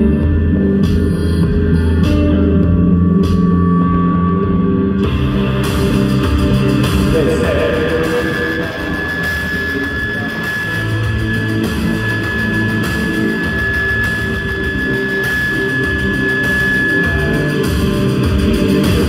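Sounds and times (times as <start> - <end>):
drums: 0.0 - 19.0
electric guitar: 0.0 - 19.0
keyboards: 0.0 - 19.0.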